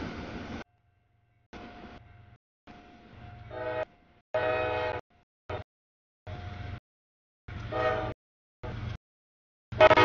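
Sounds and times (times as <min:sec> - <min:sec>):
freight train rumbling past: 0:00.0 - 0:05.6, 0:07.5 - 0:09.0
locomotive multi-chime horn: 0:03.3 - 0:05.6, 0:07.7 - 0:08.2, 0:09.7 - 0:10.0.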